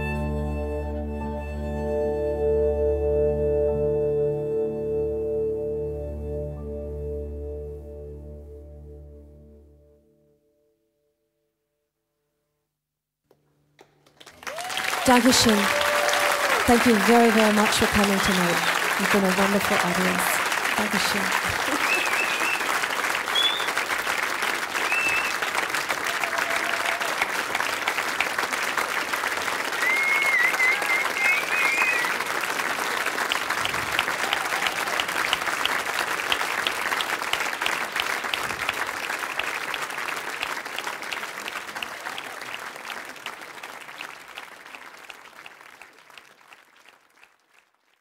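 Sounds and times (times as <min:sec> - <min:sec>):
audience applauding: 0:13.8 - 0:48.0.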